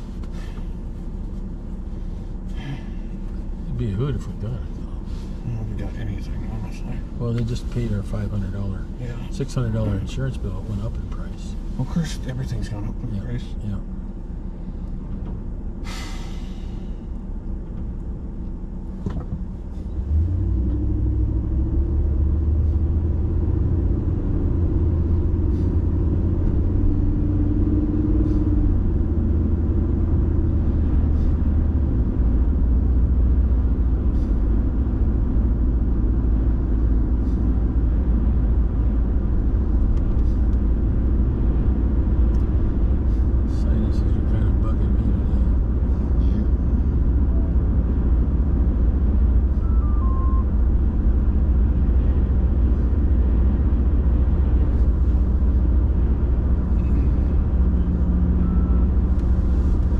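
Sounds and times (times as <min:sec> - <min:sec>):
vehicle engine and tyres rumbling: 0:00.0 - 0:59.9.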